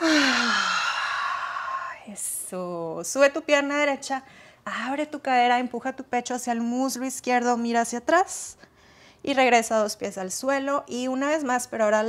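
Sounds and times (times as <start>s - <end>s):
woman sighing: 0.0s - 2.2s.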